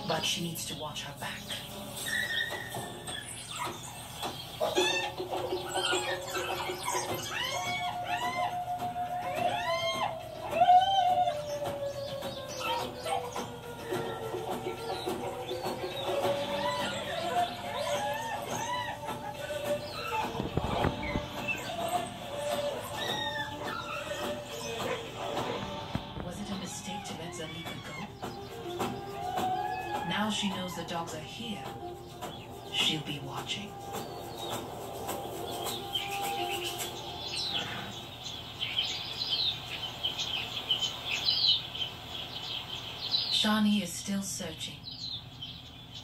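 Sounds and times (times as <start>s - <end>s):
documentary background music: 0.0s - 41.6s
high-pitched squealing animal calls: 1.9s - 31.7s.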